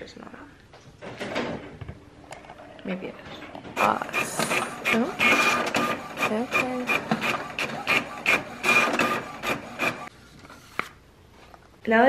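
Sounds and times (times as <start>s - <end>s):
printer mechanism whirring: 3.8s - 10.1s.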